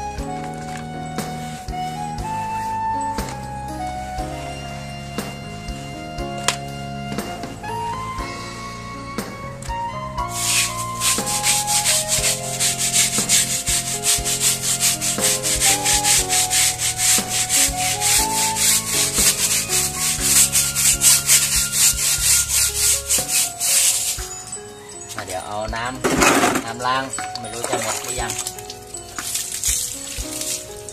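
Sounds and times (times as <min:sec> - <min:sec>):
brush scrubbing wet rubber tyre: 0:10.3 - 0:24.5, 0:27.4 - 0:30.9.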